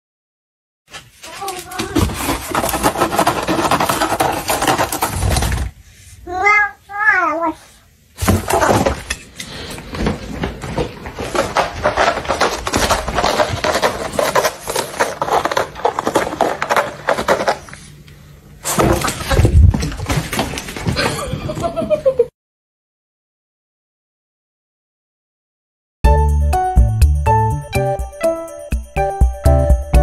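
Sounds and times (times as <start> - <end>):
cat scratching cardboard: 0.9 - 5.7, 11.2 - 17.9.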